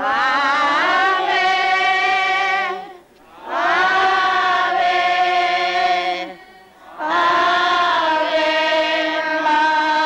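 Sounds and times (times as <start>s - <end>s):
crowd singing a hymn: 0.0s - 10.0s.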